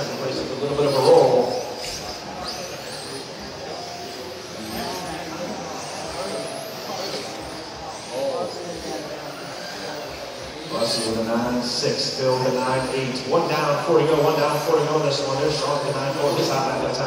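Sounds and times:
electric motors whining: 0.0s - 17.0s
faint voices talking: 0.0s - 17.0s.

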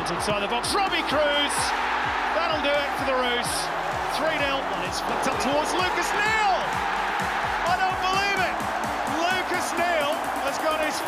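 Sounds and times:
commentator shouting excitedly: 0.0s - 6.8s, 7.5s - 11.0s
music with a quick beat: 3.0s - 11.0s.

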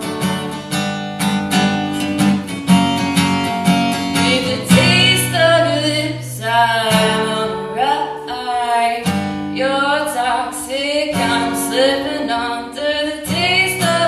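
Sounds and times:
acoustic guitar strumming: 0.0s - 14.0s
woman singing: 3.9s - 14.0s.

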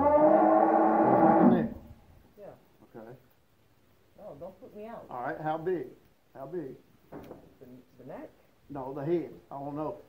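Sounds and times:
cow mooing: 0.0s - 1.8s.

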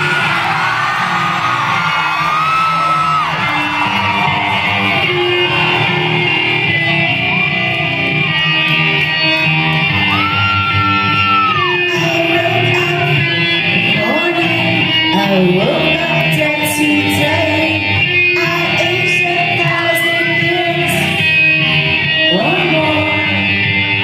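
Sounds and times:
live rock band playing: 0.0s - 24.0s
sliding high guitar notes: 0.0s - 24.0s.

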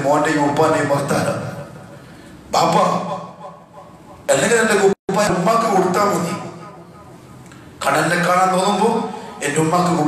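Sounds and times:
man preaching: 0.0s - 7.1s, 7.8s - 10.0s.

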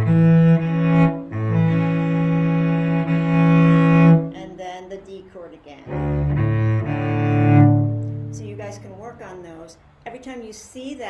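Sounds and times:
cello double stop bowing: 0.0s - 4.4s, 5.9s - 9.2s.

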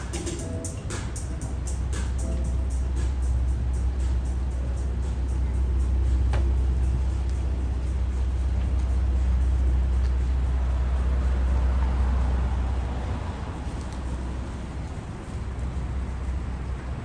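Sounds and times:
faint music with ticking beat: 0.0s - 17.0s
faint traffic hum: 0.0s - 17.0s
street ambience rumble: 0.0s - 17.0s.

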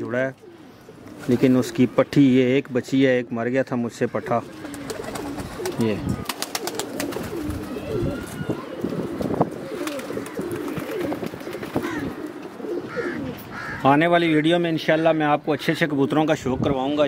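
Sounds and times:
pigeons cooing: 0.0s - 2.0s, 4.2s - 13.8s.

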